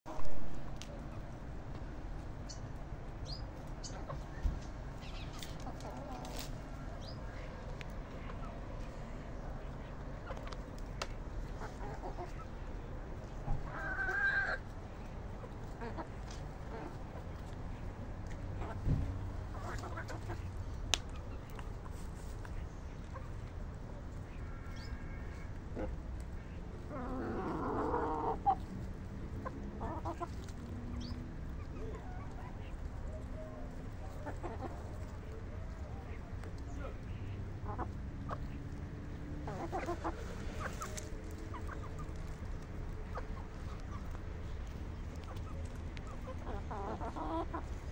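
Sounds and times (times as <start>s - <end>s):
hens clucking: 3.3s - 47.9s.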